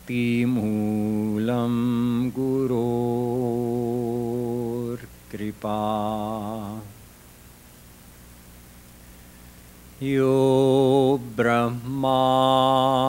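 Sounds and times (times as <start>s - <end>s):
man chanting: 0.1s - 6.9s, 10.0s - 13.0s.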